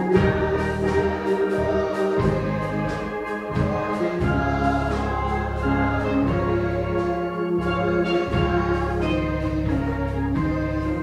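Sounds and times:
congregation singing a hymn: 0:00.0 - 0:11.0
instrumental accompaniment: 0:00.0 - 0:11.0.

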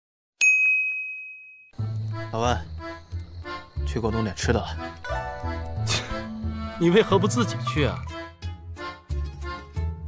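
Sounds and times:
bright ding: 0:00.4 - 0:01.7.

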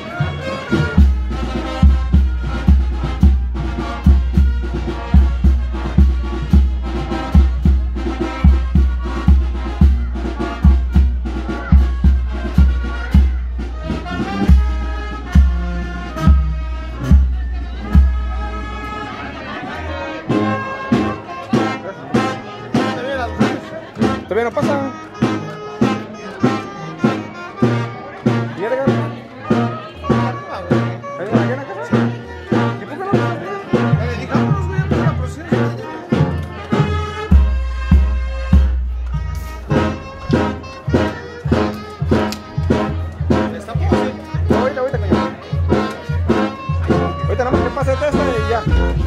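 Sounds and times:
brass band music: 0:00.0 - 0:49.0.

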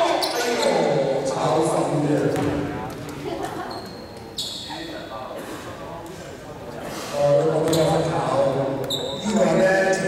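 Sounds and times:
voices echoing in gymnasium: 0:00.0 - 0:10.0.

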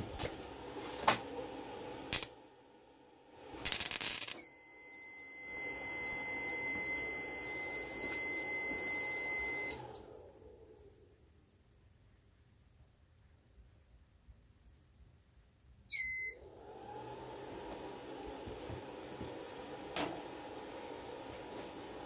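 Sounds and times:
welding arc crackle: 0:02.1 - 0:02.3, 0:03.5 - 0:04.4
steady noise: 0:03.4 - 0:04.4
high alarm beep: 0:04.4 - 0:09.8.

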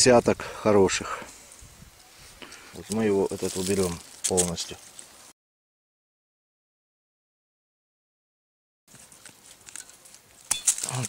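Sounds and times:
rustling among bushy stems: 0:00.0 - 0:05.3, 0:08.9 - 0:11.0
pruning shears snipping: 0:09.2 - 0:11.0.

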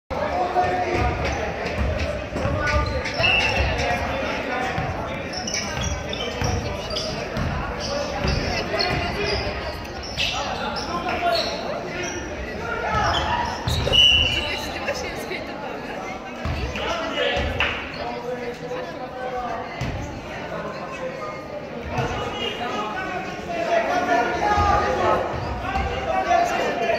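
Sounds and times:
voices of players and spectators: 0:00.1 - 0:26.9
shoe squeak: 0:02.5 - 0:15.3.

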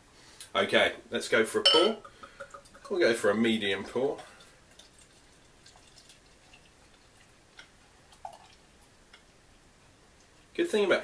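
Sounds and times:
beer trickling into a glass: 0:01.6 - 0:08.7
light drip-like ticks: 0:04.2 - 0:09.4, 0:10.2 - 0:10.6.

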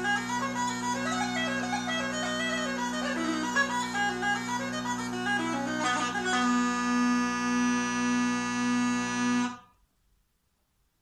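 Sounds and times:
bagpipe drones: 0:00.0 - 0:09.7.

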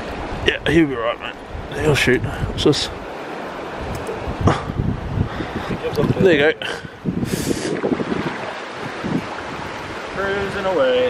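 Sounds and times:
river water rushing: 0:00.0 - 0:11.0
wind buffeting microphone: 0:00.0 - 0:11.0.

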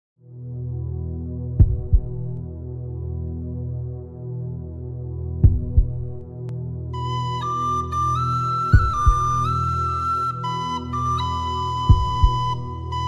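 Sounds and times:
heartbeat-like double thumps: 0:01.6 - 0:02.4, 0:05.4 - 0:06.2, 0:08.8 - 0:09.5, 0:11.8 - 0:12.7.

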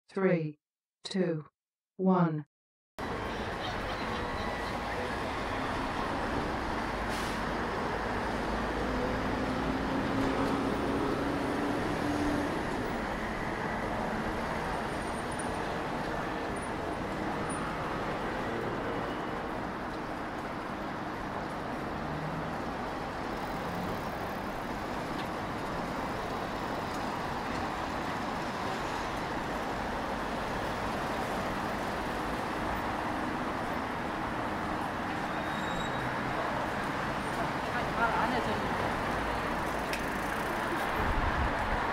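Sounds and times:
road traffic noise: 0:03.0 - 0:41.9.

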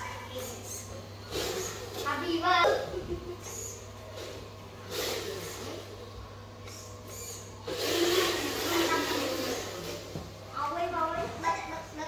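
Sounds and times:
toy truck motor and gears: 0:00.0 - 0:02.6, 0:03.4 - 0:06.0, 0:06.6 - 0:10.2
steady low hum: 0:00.0 - 0:12.0.

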